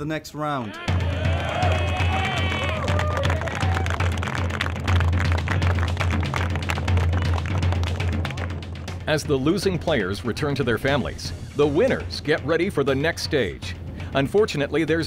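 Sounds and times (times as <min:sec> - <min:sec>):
boys cheering and shouting: 0:00.6 - 0:04.0
background music with bass: 0:00.6 - 0:15.0
rapid clapping: 0:01.4 - 0:09.0.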